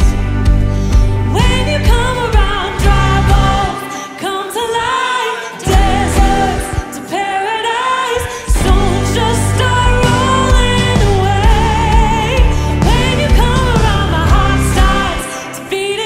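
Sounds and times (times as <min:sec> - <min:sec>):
electric bass: 0:00.0 - 0:03.8, 0:05.7 - 0:06.9, 0:08.5 - 0:15.3
drums: 0:00.0 - 0:04.1, 0:05.6 - 0:07.2, 0:08.2 - 0:15.8
electric guitar: 0:00.0 - 0:16.0
woman singing lead: 0:00.0 - 0:16.0.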